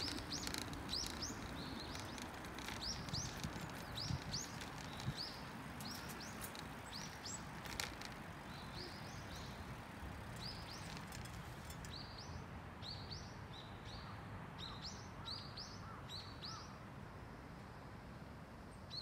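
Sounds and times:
small birds chirping: 0.0s - 16.8s.

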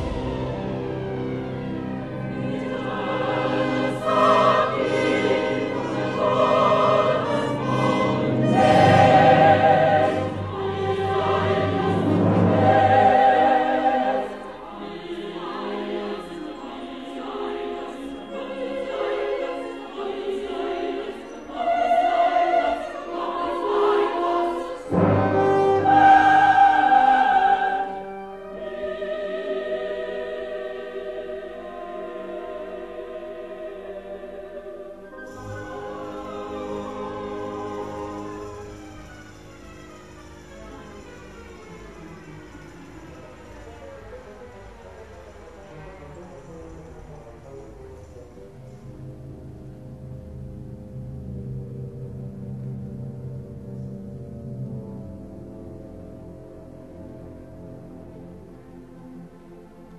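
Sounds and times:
choir with orchestra: 0.0s - 59.9s.

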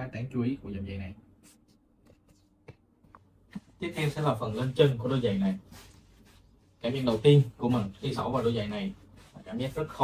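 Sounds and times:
hands rustling football boots: 1.5s - 10.0s.

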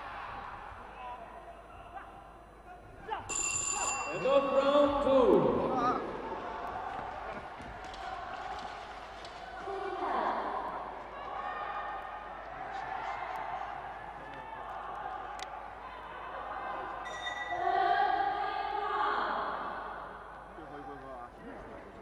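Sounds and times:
crowd calling and shouting: 0.0s - 22.0s.

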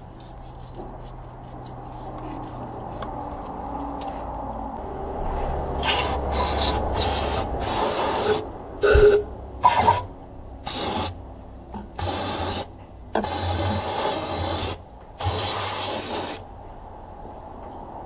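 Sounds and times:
aerosol spray hissing bursts: 10.7s - 11.2s, 12.0s - 16.4s.

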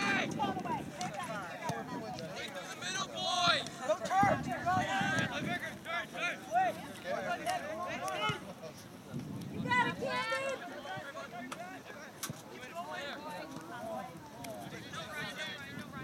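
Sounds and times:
spectators talking and calling out: 0.0s - 16.0s.

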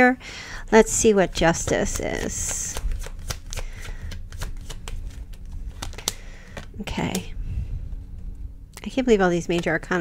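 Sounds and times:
cards being shuffled: 1.3s - 7.2s.

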